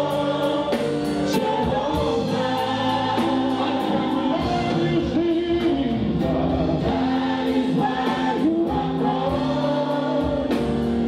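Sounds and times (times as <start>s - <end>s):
group singing gospel in harmony: 0.0s - 11.0s.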